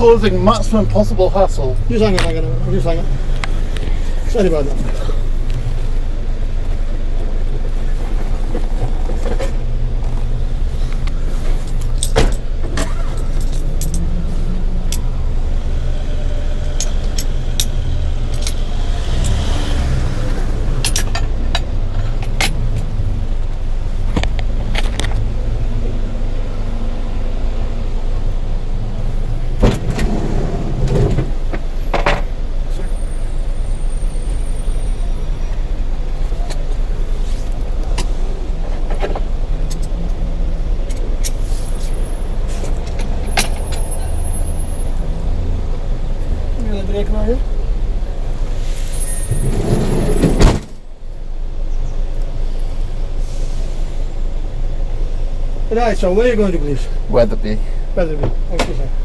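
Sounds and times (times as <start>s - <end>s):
taxi engine idling: 0.0s - 59.0s.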